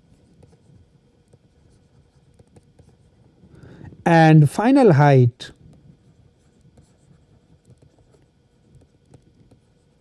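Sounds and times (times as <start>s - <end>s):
pen ticking on writing tablet: 7.4s - 10.0s.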